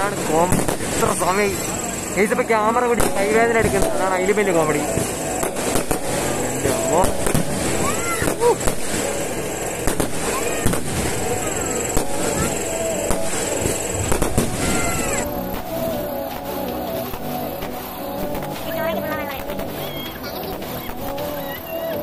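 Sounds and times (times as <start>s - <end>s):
firework bursts and crackling bangs: 0.0s - 22.0s
firework whistling: 0.0s - 22.0s.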